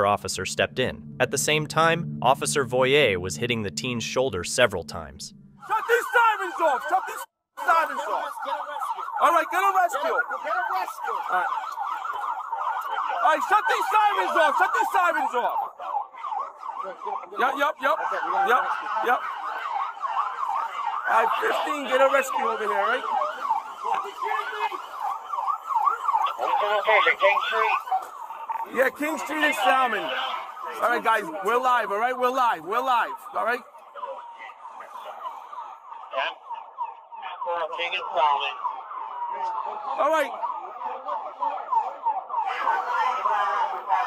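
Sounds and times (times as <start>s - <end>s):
police siren yelping: 0.0s - 44.0s.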